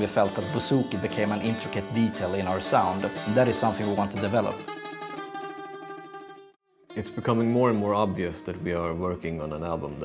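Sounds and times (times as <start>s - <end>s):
bouzouki strings plucked: 0.0s - 9.0s.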